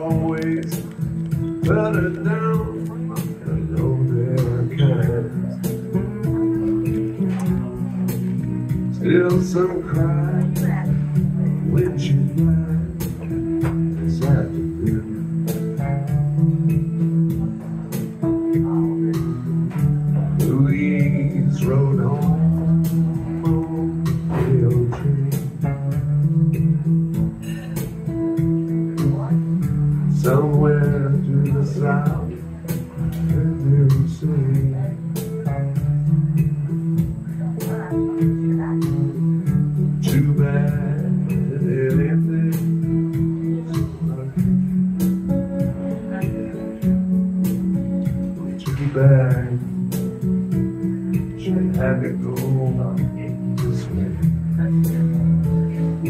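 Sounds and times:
bass line: 0.0 - 56.0
electric guitar blues melody: 0.0 - 56.0
steady tapping beat: 0.0 - 56.0.

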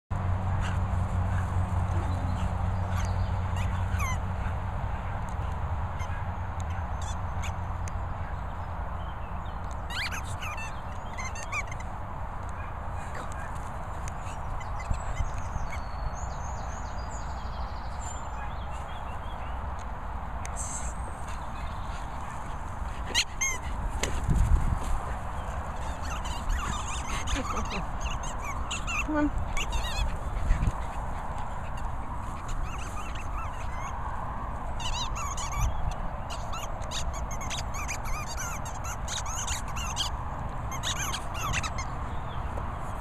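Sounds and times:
small dog yipping: 2.4 - 4.2, 9.9 - 11.8, 20.6 - 24.3, 25.0 - 34.0, 34.8 - 40.1, 40.7 - 41.9.

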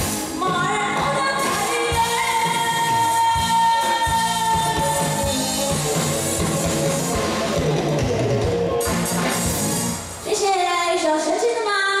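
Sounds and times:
band backing: 0.0 - 11.4
woman singing through a pa: 0.4 - 5.4.

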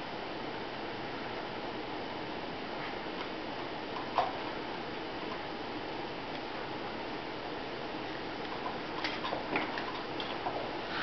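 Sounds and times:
steady background hiss: 0.0 - 11.0.

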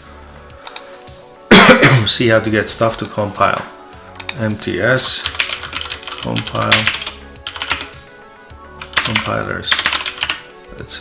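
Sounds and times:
faint background music: 0.0 - 11.0
man coughing: 1.5 - 2.2.

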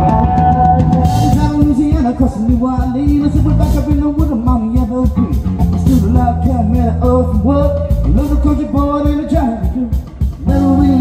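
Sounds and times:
man singing: 0.0 - 11.0
rock and roll band playing: 0.0 - 11.0.

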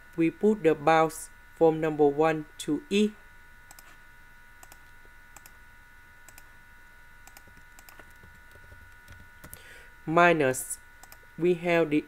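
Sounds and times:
faint electrical hum: 0.0 - 12.0
faint keyboard clicks: 7.3 - 9.6.

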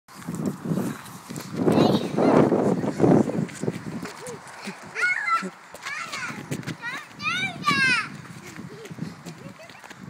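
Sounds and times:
running footfalls: 0.1 - 10.0.

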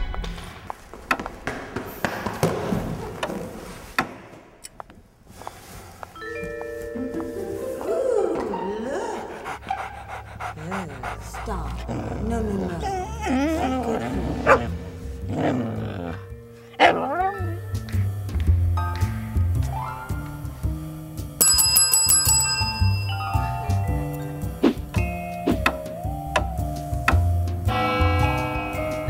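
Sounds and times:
dog whining: 8.2 - 17.7
background music with bass line: 13.3 - 21.5, 23.2 - 29.0
service bell struck rapidly: 21.4 - 23.4.

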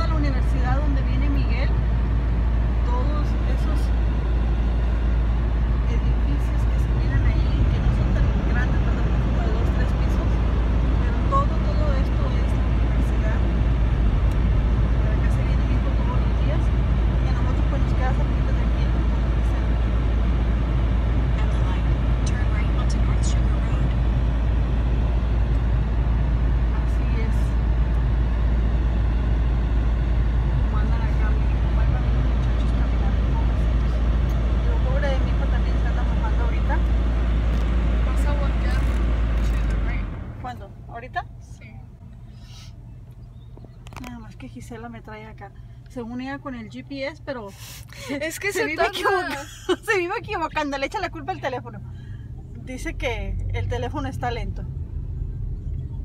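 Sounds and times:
car cabin road rumble: 0.0 - 56.0.

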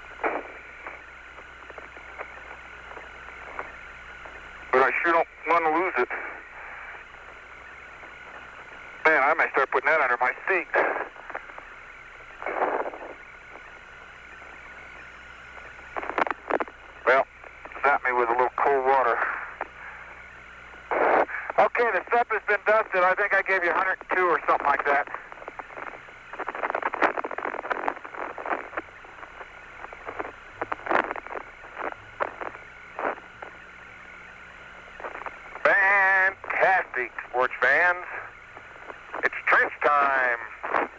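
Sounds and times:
faint steady tone: 0.0 - 40.9
radio hiss: 0.0 - 40.9.

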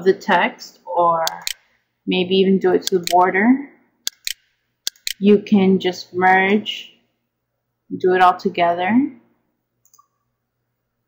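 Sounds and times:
faint computer mouse clicks: 4.1 - 5.2, 9.8 - 10.1.

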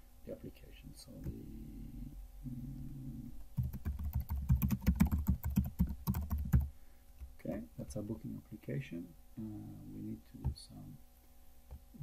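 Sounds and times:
typing on computer keyboard: 3.6 - 6.7.

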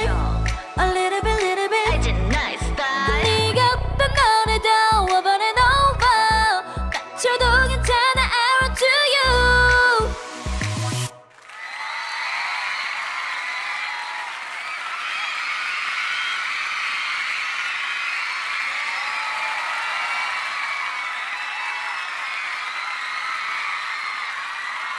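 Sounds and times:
audience applauding and cheering: 11.0 - 24.9
whoops and shouts: 11.5 - 24.9.

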